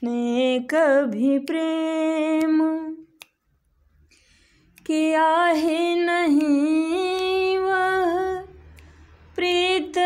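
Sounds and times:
woman singing unaccompanied: 0.0 - 3.2, 4.8 - 10.0.

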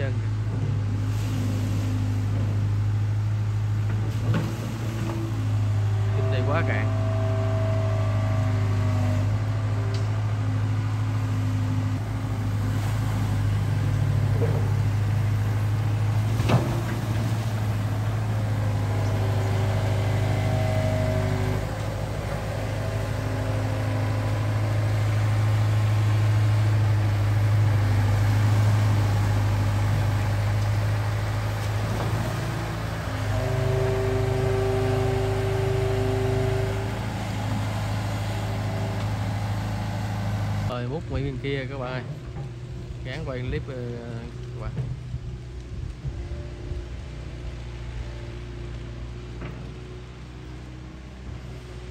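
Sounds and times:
excavator diesel engine drone: 0.0 - 51.9
hydraulic hum: 0.0 - 51.9.

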